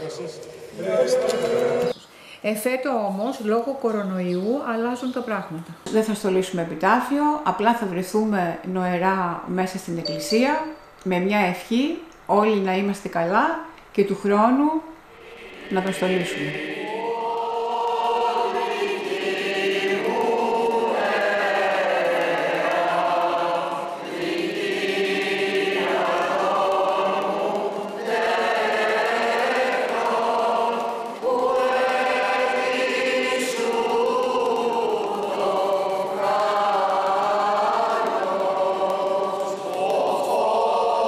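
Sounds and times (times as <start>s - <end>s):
group singing a hymn in unison: 0.7s - 2.0s, 15.0s - 41.0s.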